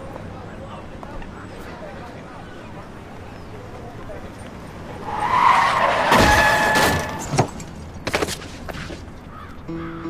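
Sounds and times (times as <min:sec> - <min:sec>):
car tyres screeching: 0:02.9 - 0:09.2.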